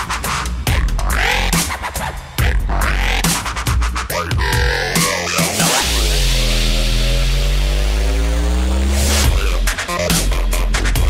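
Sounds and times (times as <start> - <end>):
deep sub-bass: 0.0 - 11.0
distorted synth bass note: 4.1 - 11.0.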